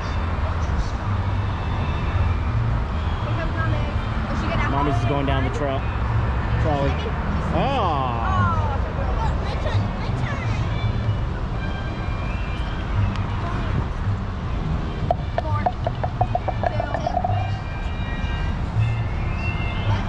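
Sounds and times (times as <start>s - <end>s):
putters tapping golf balls: 15.0s - 17.6s
low outdoor rumble: 15.1s - 17.9s.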